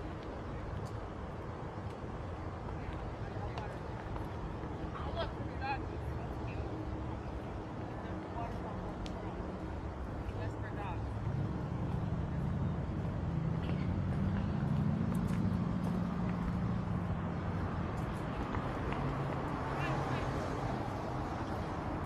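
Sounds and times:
vehicle engine hum: 0.0s - 22.0s.

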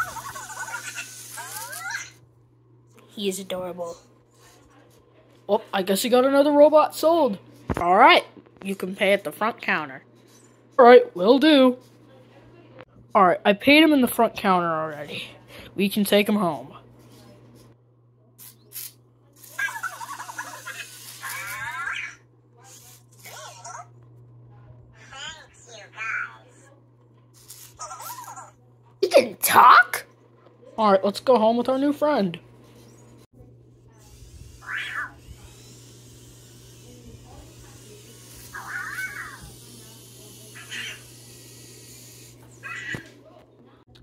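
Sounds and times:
toy robot chirping: 0.0s - 2.2s, 18.7s - 23.6s, 34.0s - 36.8s, 38.5s - 39.6s, 40.4s - 43.1s.

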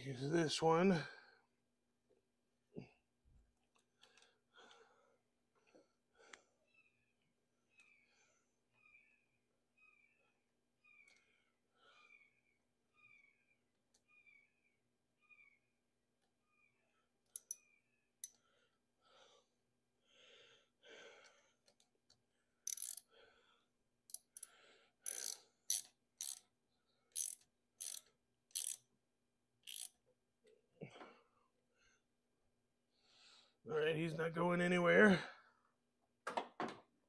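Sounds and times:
hand tool clicking: 17.3s - 17.6s, 21.6s - 23.1s, 24.1s - 26.4s, 27.1s - 28.8s, 29.6s - 30.0s.

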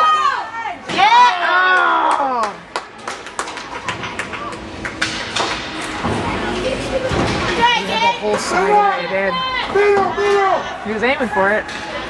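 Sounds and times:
cheering shout: 0.0s - 2.6s
spectator chatter: 5.7s - 12.0s.

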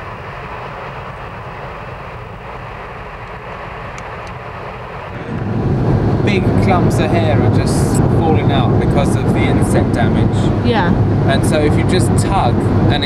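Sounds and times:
car cabin drone: 0.0s - 13.0s
road and wind noise of cars: 0.0s - 13.0s.

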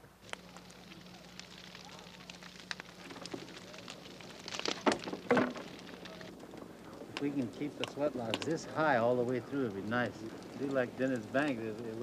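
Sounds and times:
wood fire crackling and popping: 0.0s - 12.0s
voices: 0.2s - 12.0s.

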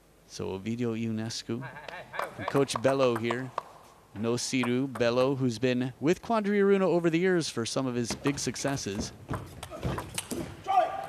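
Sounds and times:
person shouting: 10.6s - 11.0s.

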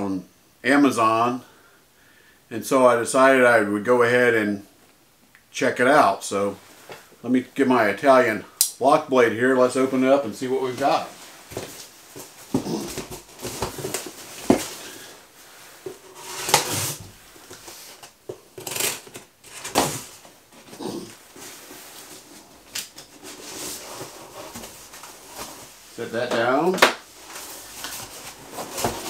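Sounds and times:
cardboard flaps knocking and rustling: 11.5s - 15.1s, 26.8s - 29.0s
tape tearing rips: 18.6s - 20.0s.

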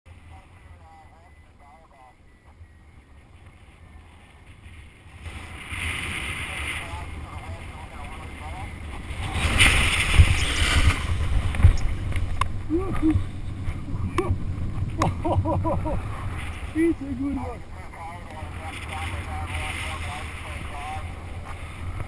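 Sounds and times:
wind rushing over microphone: 0.1s - 22.0s.

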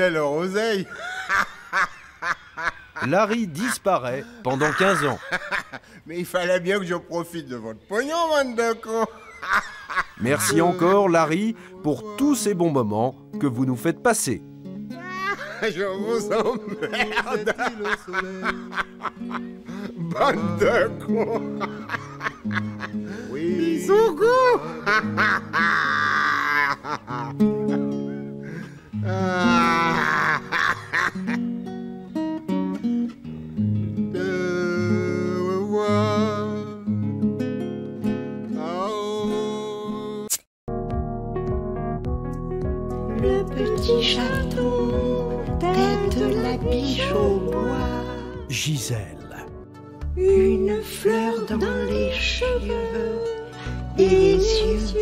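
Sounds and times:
man laughing: 0.6s - 6.1s, 8.8s - 11.5s, 15.0s - 31.5s
man cackling: 0.8s - 6.0s, 8.9s - 11.2s, 15.0s - 31.5s
guitar-backed music: 10.2s - 55.0s.

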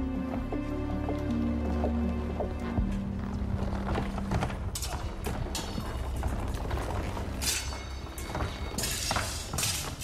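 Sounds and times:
footsteps on wooden stage: 0.0s - 9.6s.

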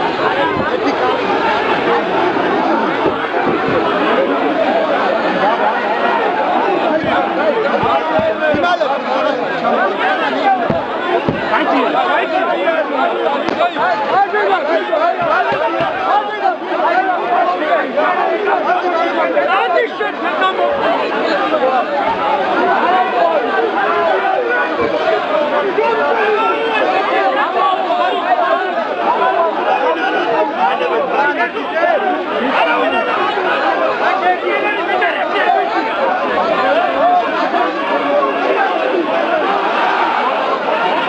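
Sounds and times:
crowd of men talking and calling: 0.0s - 41.0s.

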